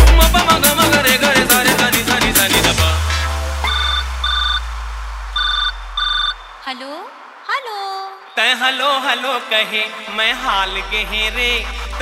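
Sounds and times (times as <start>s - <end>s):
deep bass boom: 0.0s - 6.6s
voice sample: 2.8s - 8.6s
electronic telephone double rings: 5.4s - 6.5s.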